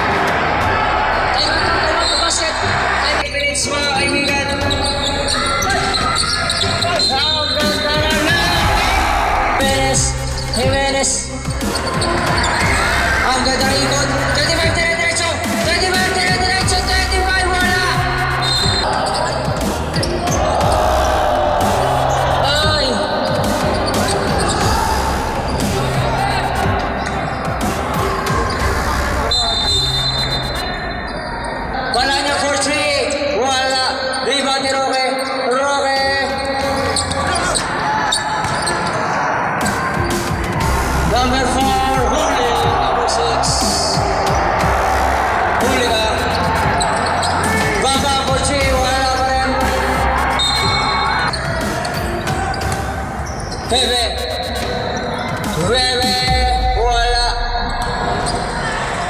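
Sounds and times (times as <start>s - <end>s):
background music with bass: 0.0s - 30.9s, 39.6s - 59.0s
crowd noise: 0.0s - 59.0s.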